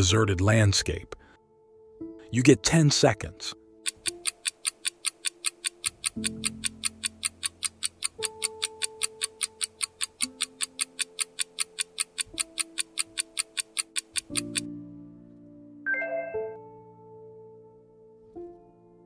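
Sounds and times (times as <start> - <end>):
countdown timer ticking: 3.8 - 14.8
soft sustained music chords: 14.4 - 19.0.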